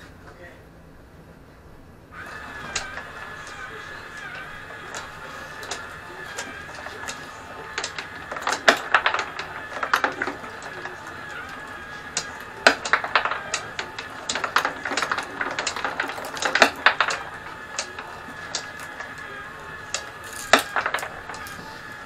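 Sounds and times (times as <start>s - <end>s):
small electric motor whining: 2.1s - 22.0s
marbles clattering on wooden tracks: 2.2s - 22.0s.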